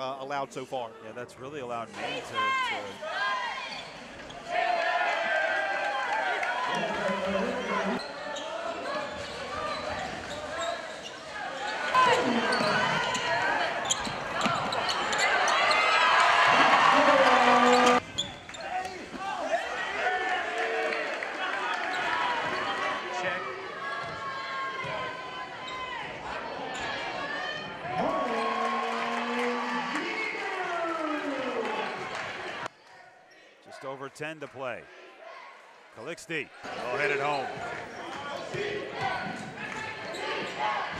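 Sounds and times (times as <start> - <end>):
crowd voices and shouts: 0.0 - 40.9.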